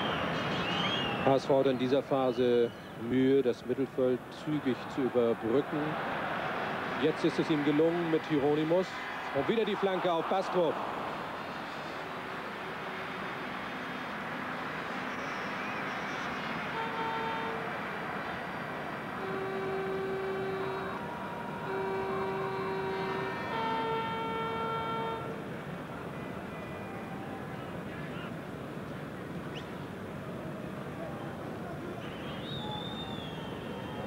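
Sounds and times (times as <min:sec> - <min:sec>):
stadium crowd noise: 0:00.0 - 0:34.0
fans' horns sounding long notes: 0:16.7 - 0:17.7, 0:19.1 - 0:25.5.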